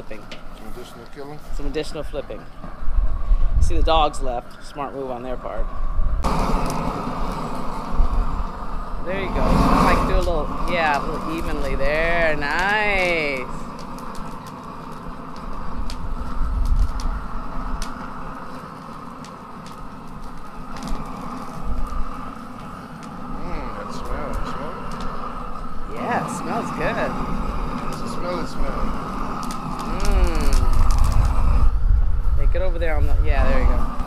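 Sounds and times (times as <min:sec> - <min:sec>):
propane torch flame roaring: 0:00.0 - 0:34.0.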